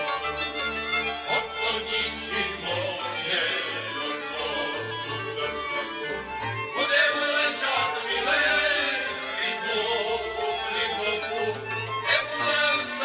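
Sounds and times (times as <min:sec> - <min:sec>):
fiddles playing tune: 0:00.0 - 0:13.0
folk band with cimbalom: 0:00.0 - 0:13.0.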